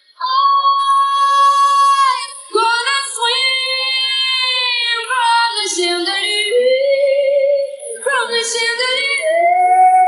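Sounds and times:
woman singing pop vocal: 0:00.0 - 0:10.0.

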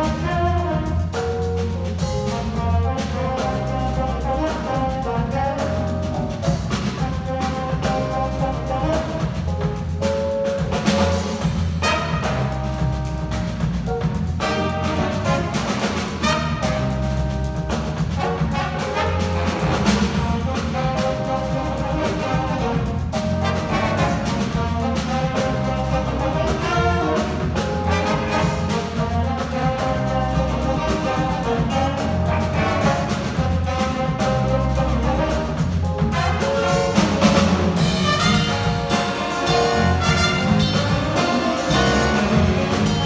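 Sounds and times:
jazz big band playing: 0:00.0 - 0:43.0.

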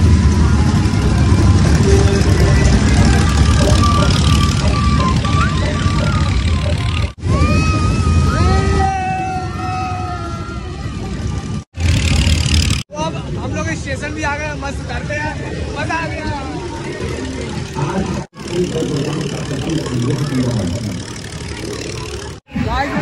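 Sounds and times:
children shouting and laughing: 0:00.0 - 0:11.7
ride low rumble: 0:00.0 - 0:23.0.

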